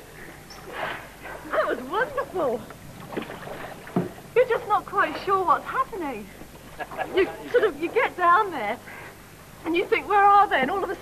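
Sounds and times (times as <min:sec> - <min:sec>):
water splashing in a pool: 0:02.4 - 0:04.3.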